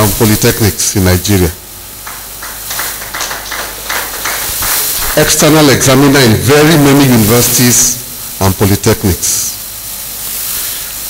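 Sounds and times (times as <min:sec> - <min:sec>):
audience applauding: 0:02.0 - 0:06.0.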